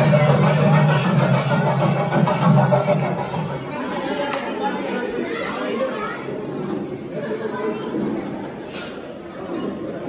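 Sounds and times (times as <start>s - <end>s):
indistinct chatter in a hall: 0.0s - 10.0s.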